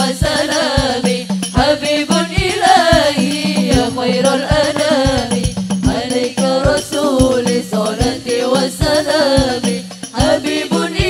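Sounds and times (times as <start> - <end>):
steady low drum beats: 0.0 - 11.0
women's group singing: 0.0 - 11.0.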